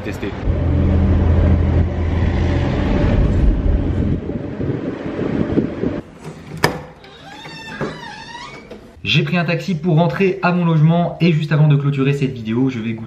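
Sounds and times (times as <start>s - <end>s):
car engine and road hum: 0.2s - 6.0s.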